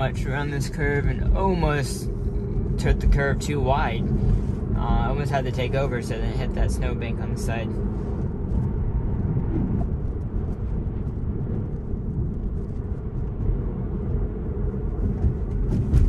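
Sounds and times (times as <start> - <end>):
tyre and road noise in car: 0.0 - 16.0.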